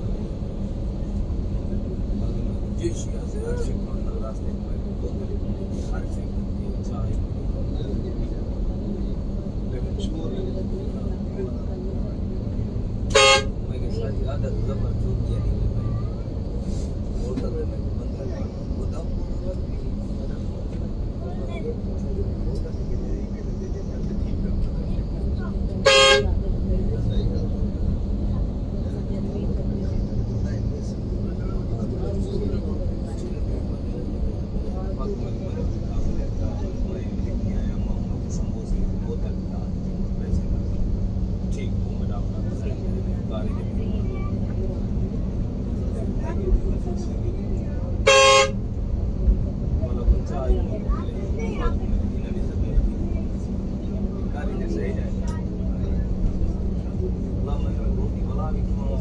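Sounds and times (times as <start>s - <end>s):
coach engine and road rumble: 0.0s - 59.0s
loud horn blasts: 13.1s - 13.6s, 25.8s - 26.3s, 48.0s - 48.6s.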